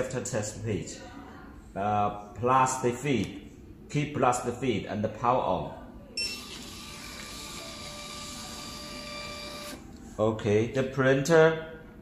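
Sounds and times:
receipt printer motor whine: 0:06.2 - 0:09.8.

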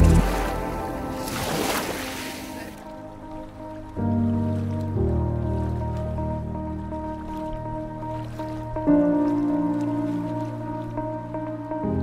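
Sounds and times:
wave washing over pebbles: 0:00.0 - 0:02.8
soft music: 0:00.0 - 0:12.0.

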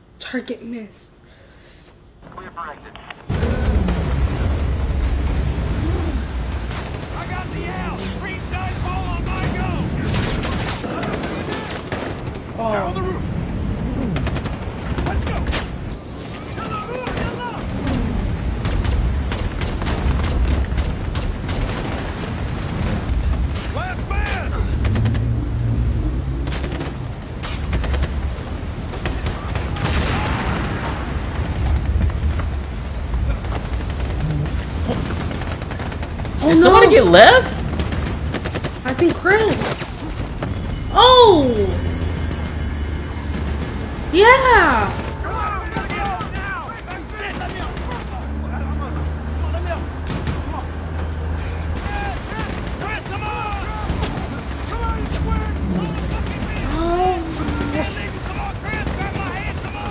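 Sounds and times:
low rumble with booms: 0:03.2 - 0:10.6
heavy explosion: 0:03.3 - 0:12.6, 0:17.0 - 0:36.5
rifle and machine-gun fire: 0:06.4 - 0:12.6, 0:14.1 - 0:25.4, 0:26.5 - 0:40.3, 0:41.8 - 0:44.1, 0:45.0 - 0:48.4, 0:57.4 - 0:59.9.

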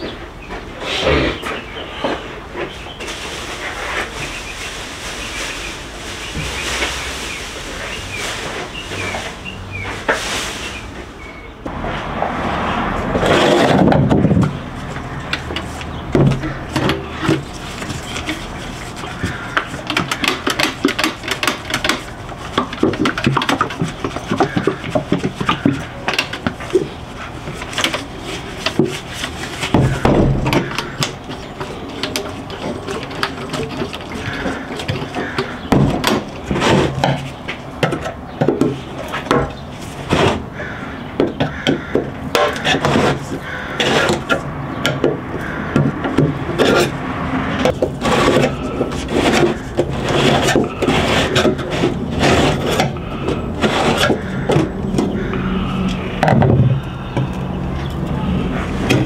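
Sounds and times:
screwdriver scraping paint can lid: 0:47.6 - 0:55.2.

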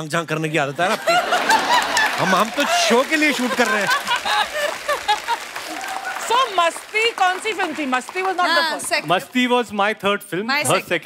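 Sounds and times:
studio audience applauding: 0:00.8 - 0:09.8
person talking: 0:10.6 - 0:11.0.

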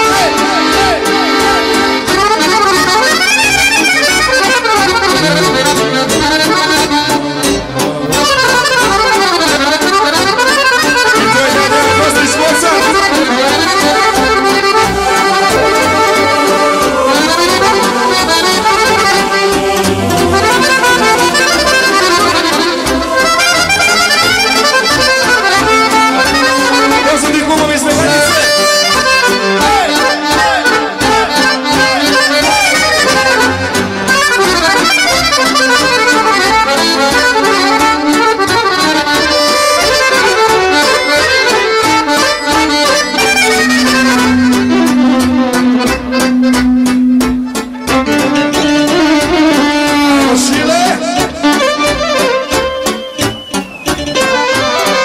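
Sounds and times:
accordion playing quick runs: 0:00.0 - 0:55.0
folk band backing: 0:00.0 - 0:55.0.

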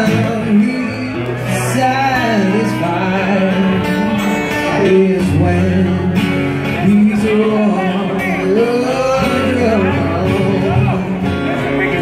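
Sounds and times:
acoustic guitar: 0:00.0 - 0:12.0
man singing into a microphone: 0:00.0 - 0:12.0.

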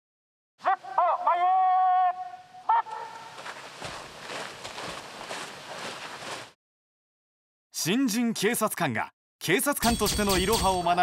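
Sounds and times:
person shouting commands: 0:00.6 - 0:03.4
shoes scuffing on gravel: 0:03.2 - 0:06.6.

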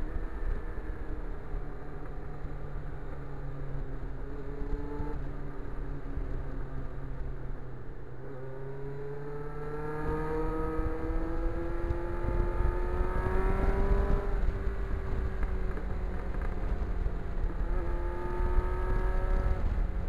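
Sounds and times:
motorcycle engine accelerating: 0:00.0 - 0:06.6, 0:08.1 - 0:20.0
wind on microphone: 0:10.1 - 0:20.0.

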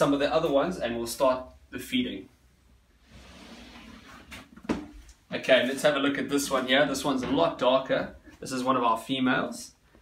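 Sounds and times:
plastic tub scraping slide: 0:03.0 - 0:04.5.

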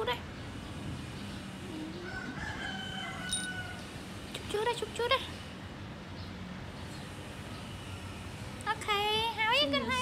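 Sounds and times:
rooster crowing: 0:02.0 - 0:03.9.

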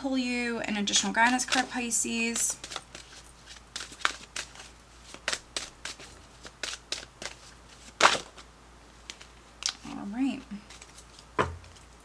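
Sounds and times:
cards being shuffled: 0:00.9 - 0:12.0
cards slapping: 0:01.2 - 0:09.8, 0:10.6 - 0:11.8.

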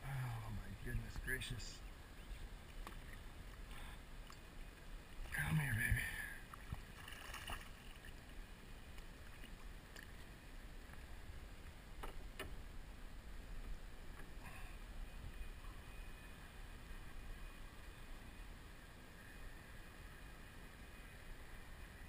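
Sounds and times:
water and wind rumble: 0:00.0 - 0:22.0
faint sharp clicks and knocks: 0:11.6 - 0:12.6.

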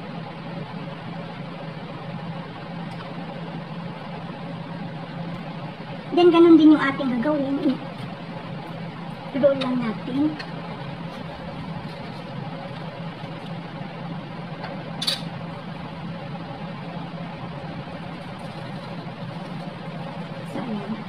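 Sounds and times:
low mechanical hum: 0:00.0 - 0:21.0.

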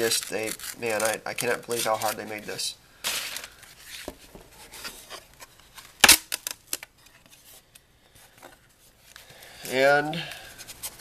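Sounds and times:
clicks and scrapes of package: 0:00.0 - 0:02.4
sharp wood cracks: 0:05.9 - 0:06.9.

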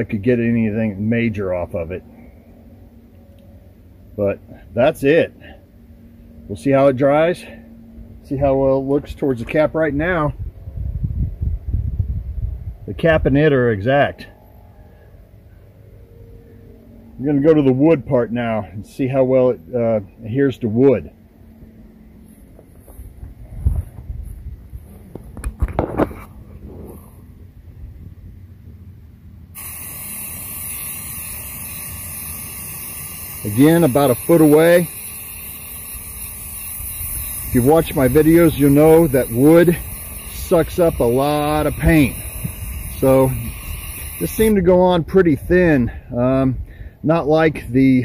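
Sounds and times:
wind buffeting microphone: 0:09.8 - 0:13.4, 0:23.1 - 0:27.0, 0:36.8 - 0:46.7
spray paint can hissing: 0:29.5 - 0:44.6.

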